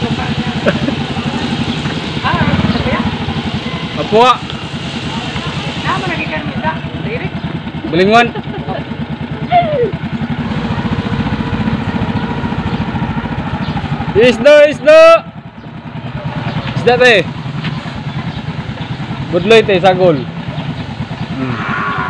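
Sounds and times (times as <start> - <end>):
small motorcycle engine running: 0.0 - 22.0
person shouting: 21.4 - 22.0.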